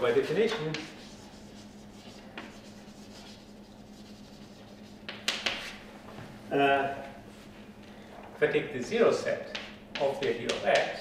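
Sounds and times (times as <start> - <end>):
chalk scratching on blackboard: 0.0 - 5.8
chalk tap: 0.5 - 1.3, 5.0 - 5.7, 9.5 - 10.9.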